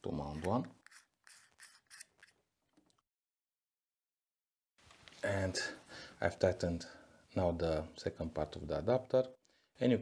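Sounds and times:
metal screw threads scraping: 0.4s - 2.4s.

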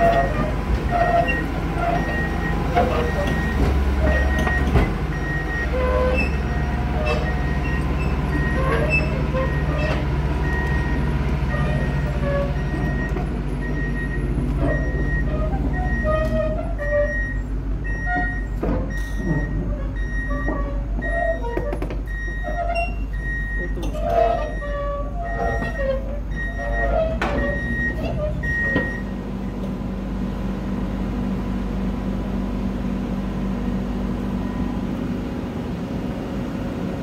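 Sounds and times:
diesel engine running: 0.0s - 37.0s.

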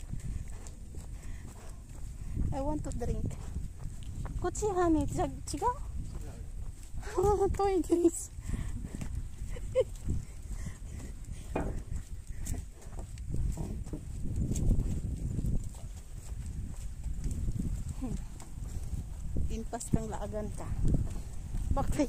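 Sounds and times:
footsteps: 0.0s - 22.0s
wind buffeting microphone: 0.0s - 22.0s.

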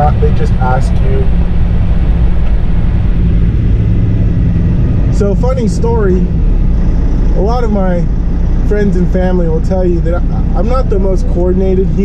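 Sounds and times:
road noise: 0.0s - 12.0s
truck diesel engine drone: 0.0s - 12.0s.

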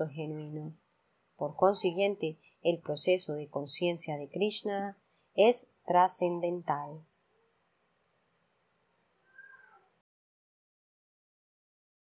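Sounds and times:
faint cry falling in pitch: 9.2s - 10.0s.

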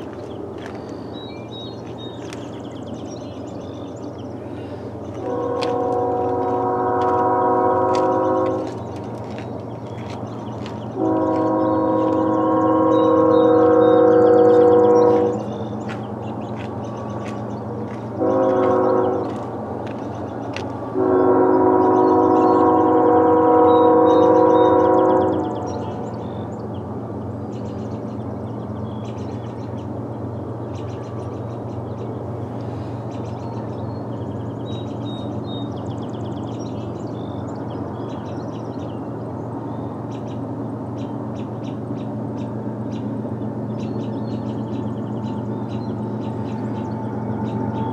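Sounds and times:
train low rumble: 0.0s - 47.9s
locomotive air horn blasts: 5.2s - 8.8s, 11.0s - 15.5s, 18.2s - 19.4s, 20.9s - 25.8s.

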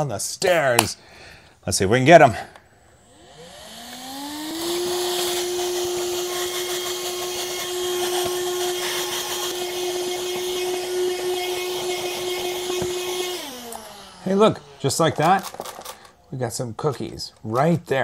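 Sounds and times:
handheld vacuum cleaner running: 3.0s - 16.2s.

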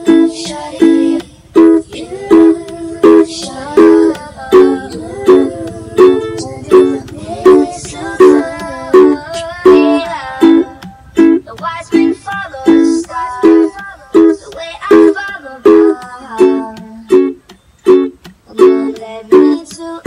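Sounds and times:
percussive taps on strings: 0.0s - 20.0s
ukulele strumming chords: 0.0s - 20.0s.

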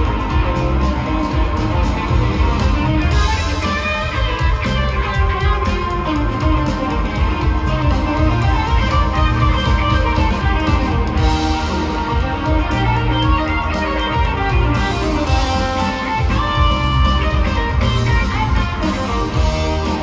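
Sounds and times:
bass guitar: 0.0s - 20.0s
drums: 0.0s - 20.0s
electric guitar: 0.0s - 20.0s.

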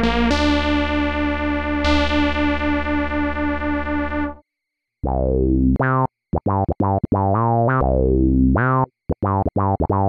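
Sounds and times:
buzzy synthesizer low note: 0.0s - 4.4s.

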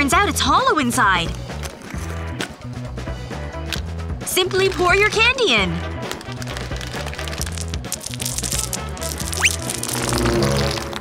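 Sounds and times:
background music: 0.0s - 11.0s
candies spilling onto wooden floor: 6.0s - 11.0s.

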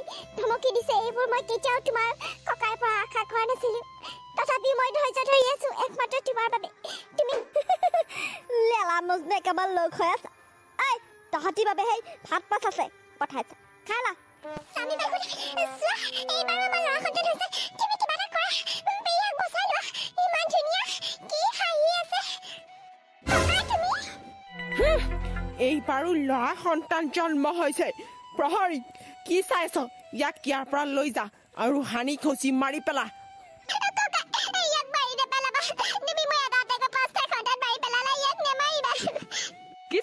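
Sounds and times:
high-pitched cartoon voice talking: 14.5s - 22.4s, 23.3s - 24.2s, 33.7s - 39.2s.

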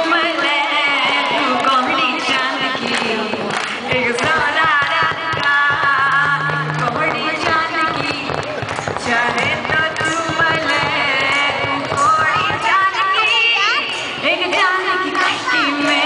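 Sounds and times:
woman singing into microphone: 0.0s - 16.0s
amplified backing music with beat: 2.6s - 16.0s.

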